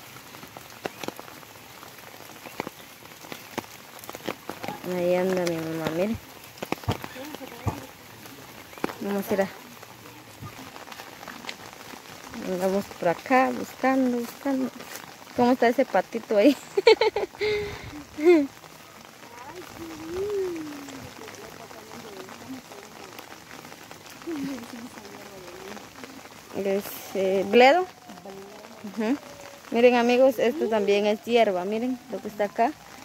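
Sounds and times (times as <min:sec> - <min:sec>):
rain falling: 0:00.0 - 0:33.0
single raindrops landing close: 0:00.0 - 0:33.0
faint voices: 0:06.8 - 0:15.0, 0:17.4 - 0:33.0.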